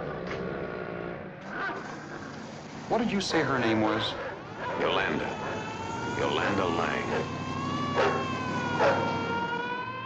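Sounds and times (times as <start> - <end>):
car engine running: 1.8 - 9.9.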